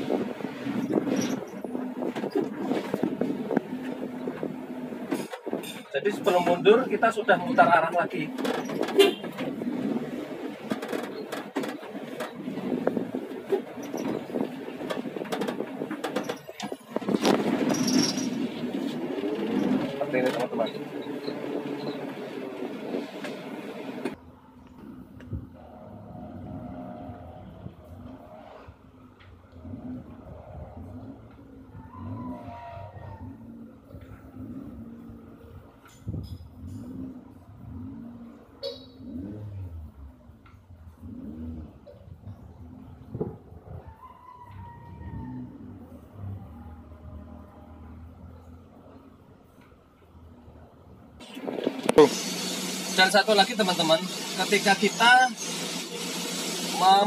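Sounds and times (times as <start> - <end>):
minivan engine and cabin noise: 0.0 - 57.0
van manoeuvring outdoors: 0.0 - 57.0.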